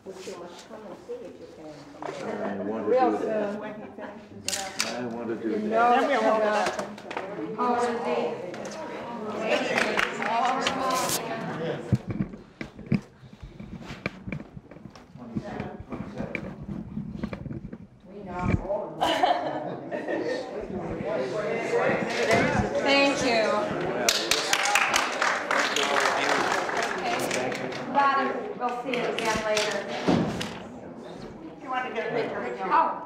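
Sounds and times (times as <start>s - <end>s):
people talking quietly: 0.0s - 33.0s.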